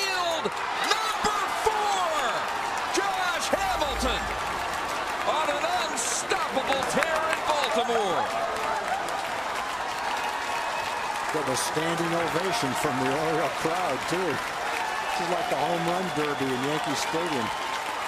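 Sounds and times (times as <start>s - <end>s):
crowd cheering and yelling: 0.0s - 18.0s
scattered claps and knocks: 0.0s - 18.0s.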